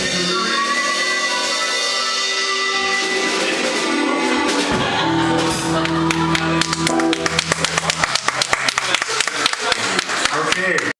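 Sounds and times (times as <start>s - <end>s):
live band holding a chord: 0.0s - 10.3s
crowd clapping: 5.2s - 10.9s.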